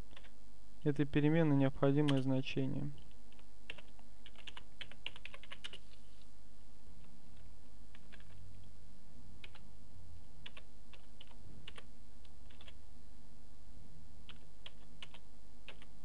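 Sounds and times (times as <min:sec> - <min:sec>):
steady low hum: 0:00.0 - 0:16.0
typing on computer keyboard: 0:03.0 - 0:05.8, 0:07.3 - 0:08.4, 0:09.4 - 0:09.6, 0:10.4 - 0:12.8, 0:14.3 - 0:15.9.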